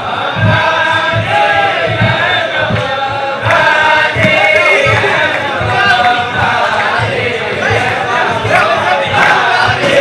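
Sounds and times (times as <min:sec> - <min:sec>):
group of men singing: 0:00.0 - 0:10.0
low thumps keeping the beat: 0:00.0 - 0:10.0.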